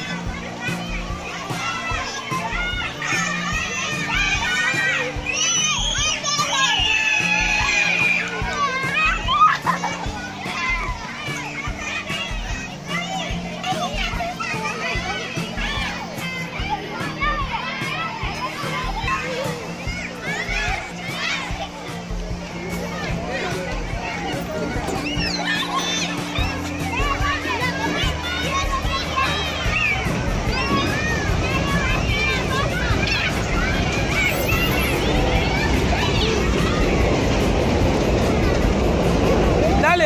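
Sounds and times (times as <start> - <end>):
children shouting and squealing: 0.0 - 40.0.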